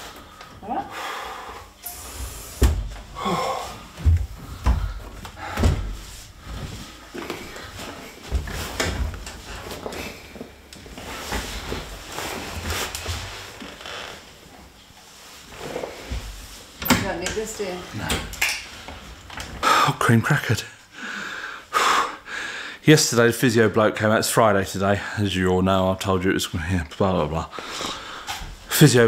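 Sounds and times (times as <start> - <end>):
shuffling: 2.1 - 17.9.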